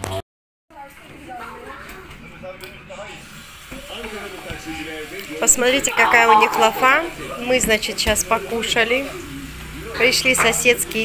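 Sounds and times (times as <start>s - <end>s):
children's voices: 5.7s - 7.1s.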